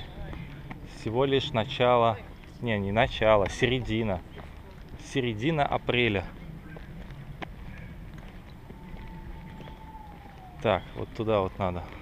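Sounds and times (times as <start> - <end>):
footsteps on asphalt: 0.0 - 12.0
low rumbling background noise: 0.0 - 12.0.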